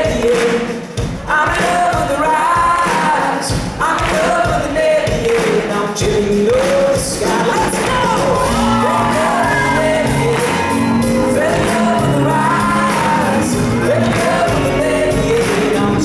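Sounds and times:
live pop-rock band: 0:00.0 - 0:16.0.

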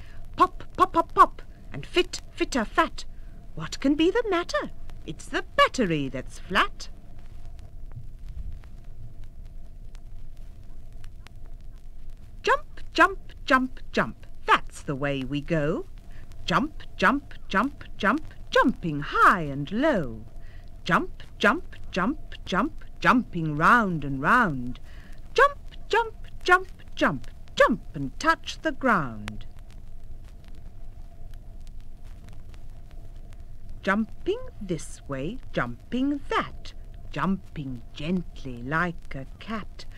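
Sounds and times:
vinyl record surface noise: 0:00.0 - 0:39.9
low rumble: 0:06.3 - 0:39.9.

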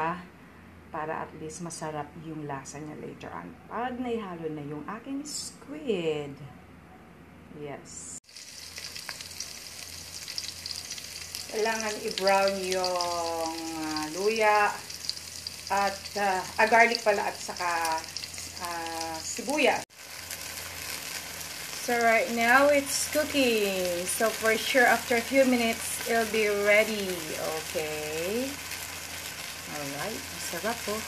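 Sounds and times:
garlic and onion sizzling in oil: 0:08.2 - 0:31.0.

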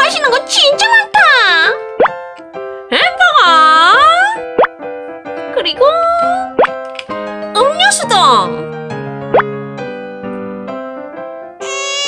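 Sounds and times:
cheerful children's music: 0:00.0 - 0:12.0.

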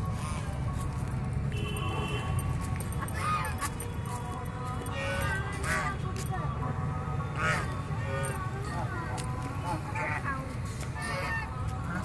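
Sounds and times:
geese honking: 0:07.4 - 0:08.4, 0:11.0 - 0:12.0.

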